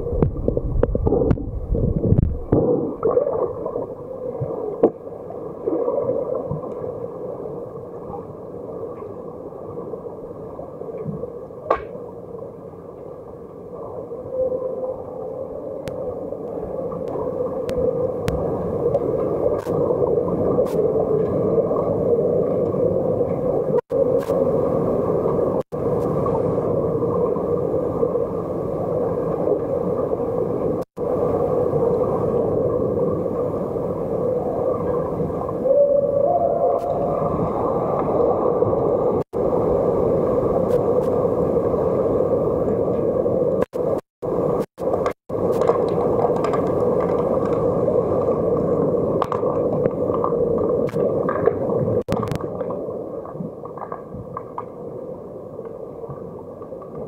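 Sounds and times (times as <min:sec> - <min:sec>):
faint underwater clicks: 0:15.8 - 0:19.9, 0:42.9 - 0:48.4, 0:49.2 - 0:54.8.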